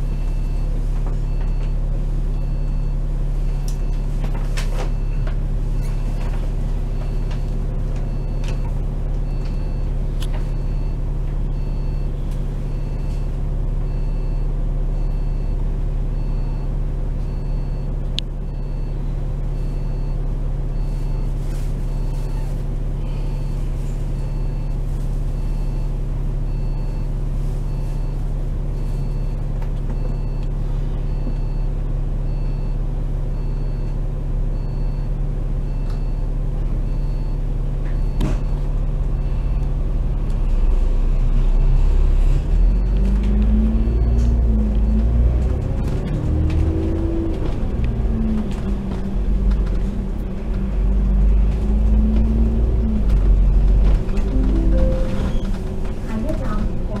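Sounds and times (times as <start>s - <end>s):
bus engine idling: 0.0s - 42.7s, 46.5s - 57.0s
faint high beeps: 54.3s - 55.5s.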